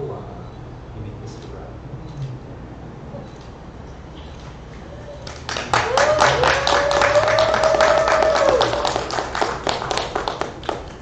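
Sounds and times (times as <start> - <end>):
guests clapping: 4.8 - 11.0.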